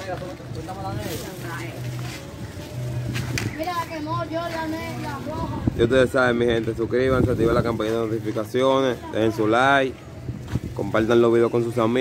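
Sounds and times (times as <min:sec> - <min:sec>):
people talking and calling: 0:00.0 - 0:12.0.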